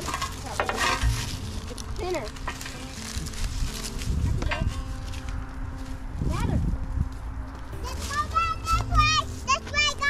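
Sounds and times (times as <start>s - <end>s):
crackles: 0.0s - 6.0s
footsteps crunching on gravel: 0.0s - 10.0s.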